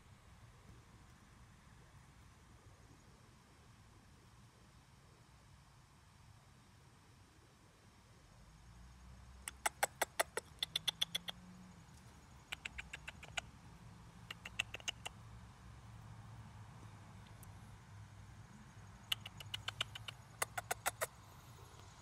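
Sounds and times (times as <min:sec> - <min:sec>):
chipmunk clicking: 0:09.5 - 0:11.4, 0:12.0 - 0:13.5, 0:14.2 - 0:15.2, 0:19.0 - 0:21.1.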